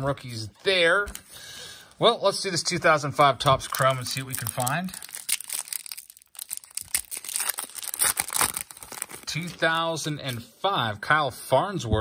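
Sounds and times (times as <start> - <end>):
foil wrapper tearing and crinkling: 3.6 - 9.9.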